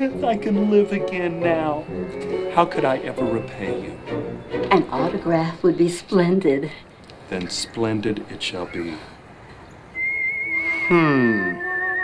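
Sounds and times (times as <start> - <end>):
falling pitched sound: 10.0 - 12.0.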